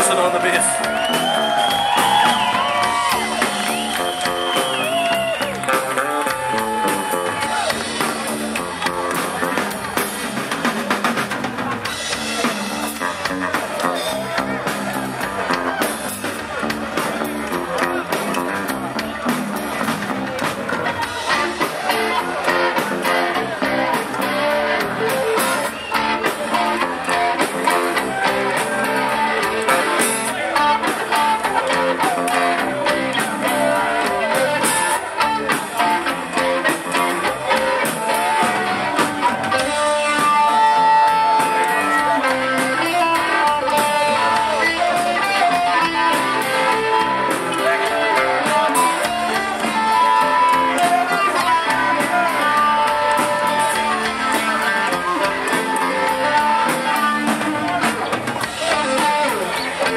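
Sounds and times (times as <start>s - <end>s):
bass guitar: 0.0s - 59.9s
drums: 0.0s - 59.9s
electric guitar lead: 0.0s - 59.9s.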